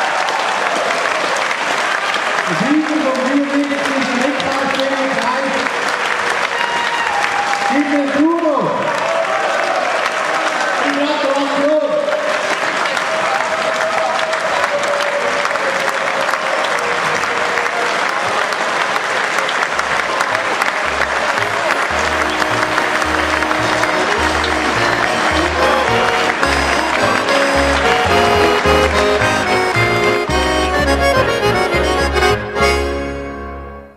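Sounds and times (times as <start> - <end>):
audience applauding: 0.0 - 33.2
accordion folk music: 20.4 - 33.9.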